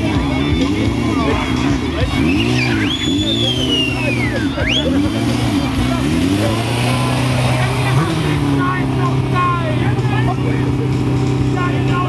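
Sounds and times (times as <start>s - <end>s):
crowd voices: 0.0s - 12.0s
motorcycle engine revving: 0.0s - 12.0s.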